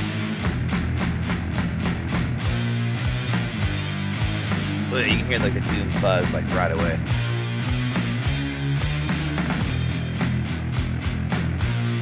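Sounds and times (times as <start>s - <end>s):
fuzz-distorted guitar chords: 0.0s - 12.0s
steady drum beat: 0.0s - 12.0s.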